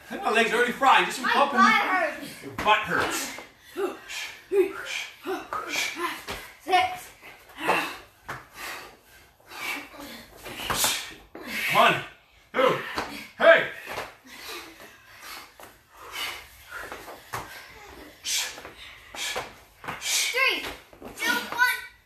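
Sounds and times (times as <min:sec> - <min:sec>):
people breathing hard: 0:02.2 - 0:20.5.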